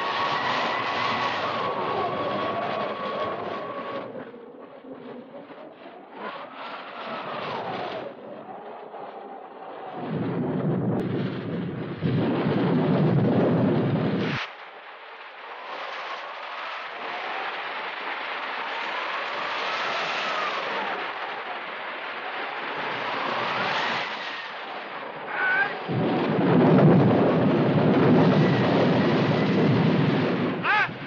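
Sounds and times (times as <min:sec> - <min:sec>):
wind whistling in gusts: 0:00.0 - 0:31.0
thunder rumble: 0:09.4 - 0:15.7, 0:24.7 - 0:31.0
heavy rain: 0:24.4 - 0:31.0.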